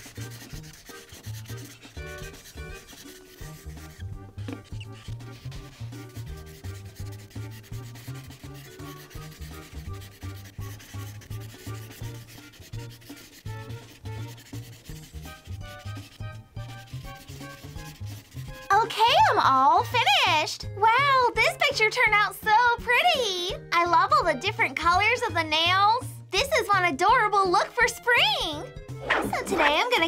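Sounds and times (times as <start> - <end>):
marker scrubbing on paper: 0.0 - 20.3, 29.0 - 30.0
faint background music: 0.0 - 30.0.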